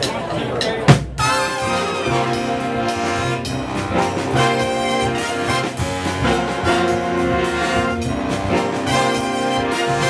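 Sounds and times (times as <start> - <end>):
jazz big band playing: 0.0 - 10.0.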